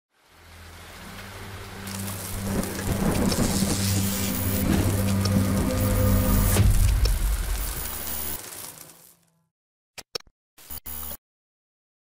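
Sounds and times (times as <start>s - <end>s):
rain: 0.1s - 9.2s
thunder: 1.8s - 8.4s.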